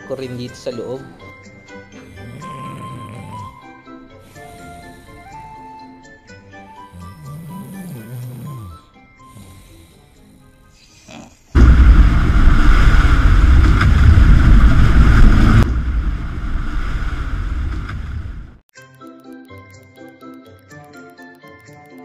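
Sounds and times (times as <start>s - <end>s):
background music: 0.0s - 11.4s, 18.8s - 22.0s
sea water churning along hull: 11.6s - 18.4s
wind buffeting microphone: 11.6s - 18.6s.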